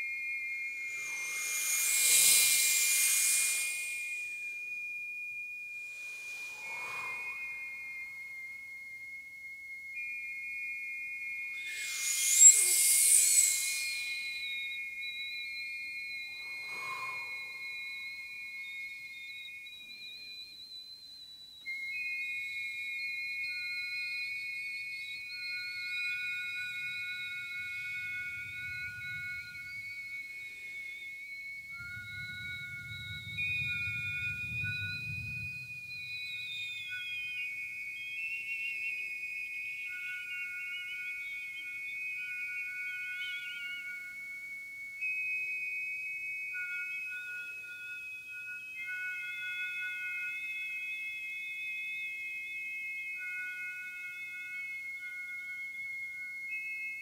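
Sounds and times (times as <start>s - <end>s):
women singing sustained high tones: 0.7s - 4.7s, 5.7s - 8.4s, 11.6s - 14.8s, 16.2s - 18.4s, 26.4s - 37.2s
breathy hissing rushes: 0.8s - 4.4s, 5.8s - 7.7s, 11.7s - 14.3s, 16.4s - 17.6s.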